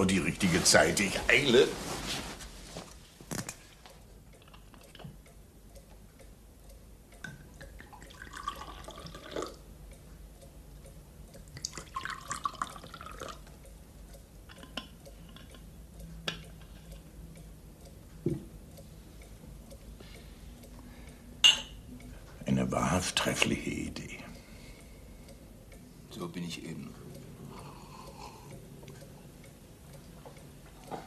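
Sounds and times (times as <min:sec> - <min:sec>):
wine pouring into glass: 0:07.8 - 0:09.6, 0:11.7 - 0:13.4
glass clicks: 0:21.4 - 0:21.8.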